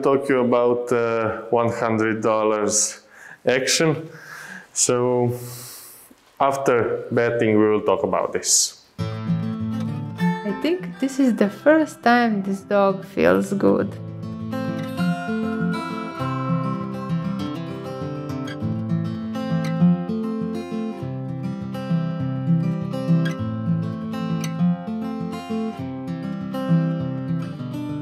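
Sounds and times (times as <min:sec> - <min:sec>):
strummed acoustic guitar: 0:09.0 - 0:28.0.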